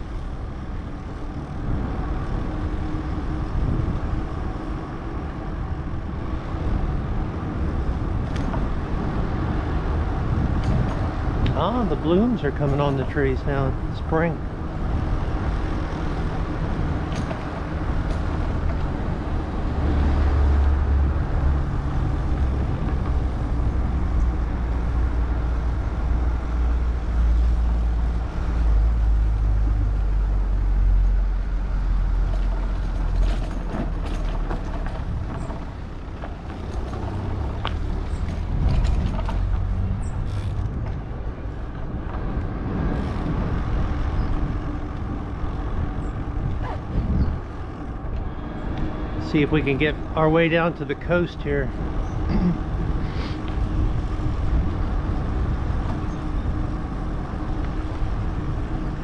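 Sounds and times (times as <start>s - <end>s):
wind rumble on microphone: 0.0s - 59.0s.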